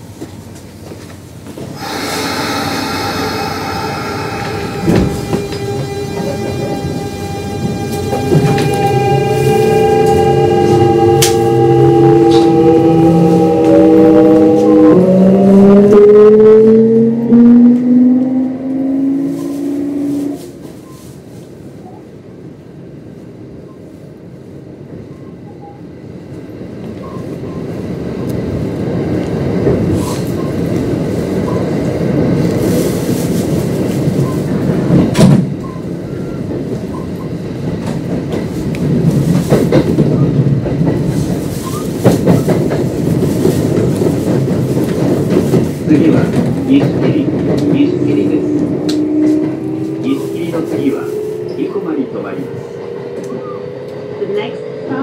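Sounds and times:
train inverter whining: 0:00.0 - 0:21.2, 0:29.2 - 0:55.0
wheels rumbling on rail: 0:00.0 - 0:55.0
clacks over rail joints: 0:36.4 - 0:49.9.

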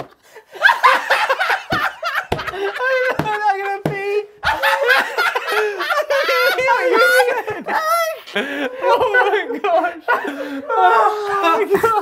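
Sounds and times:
men laughing loudly: 0:00.4 - 0:12.0.

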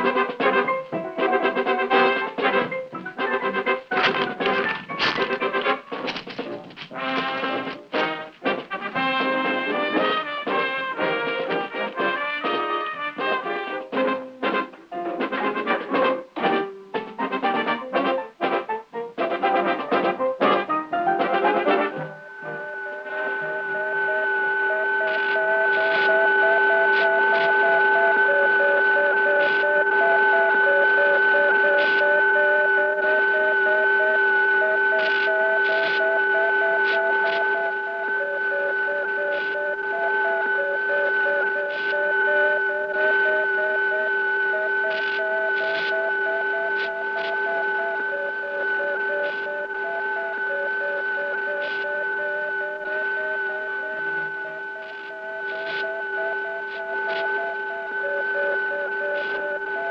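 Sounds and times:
steady humming tones: 0:00.0 - 0:59.9.

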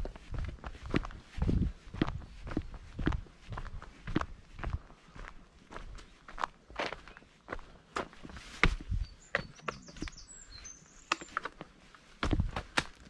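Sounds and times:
footsteps on dirt path: 0:00.0 - 0:13.0.

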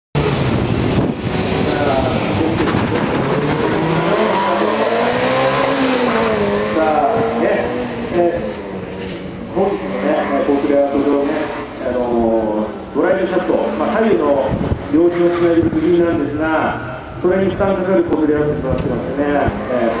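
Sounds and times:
car engine revving hard: 0:00.2 - 0:16.2, 0:19.0 - 0:20.0.

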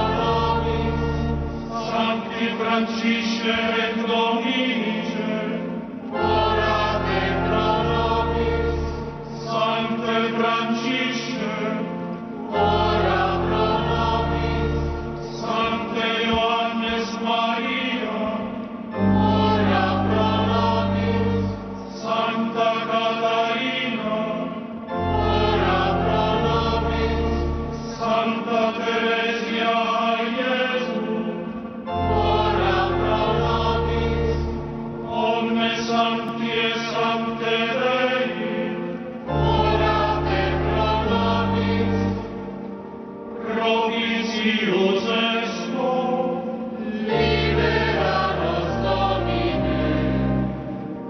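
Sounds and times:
choir and congregation chanting: 0:00.0 - 0:51.0
low organ notes: 0:23.7 - 0:29.8.

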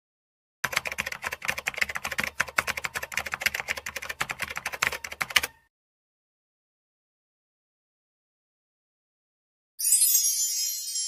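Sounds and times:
typewriter keys clacking: 0:00.6 - 0:05.6.

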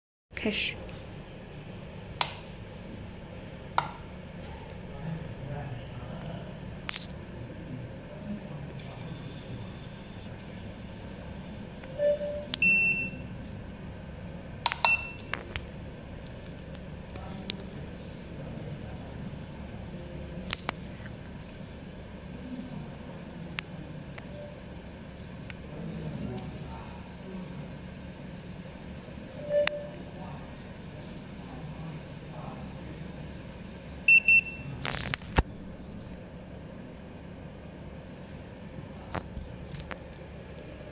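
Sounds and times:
electronic beeps: 0:10.8 - 0:13.2, 0:14.8 - 0:15.3, 0:29.1 - 0:30.2, 0:34.0 - 0:34.7.

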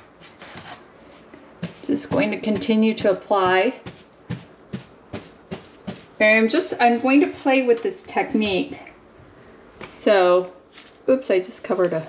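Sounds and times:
paintbrush dabbing on wall: 0:00.0 - 0:06.2.

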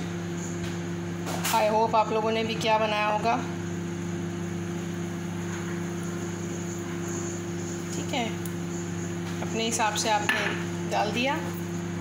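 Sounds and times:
electric motor humming: 0:03.3 - 0:12.0.

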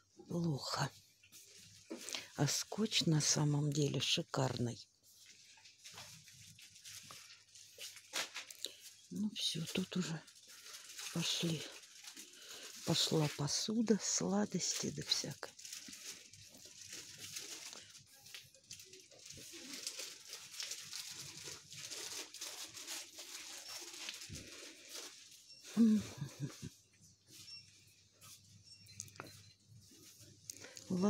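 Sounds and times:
person speaking: 0:25.7 - 0:26.7, 0:30.6 - 0:31.0.

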